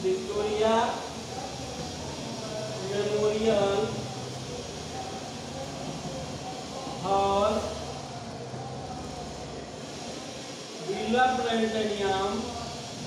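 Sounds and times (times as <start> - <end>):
man speaking: 0.0 - 4.1.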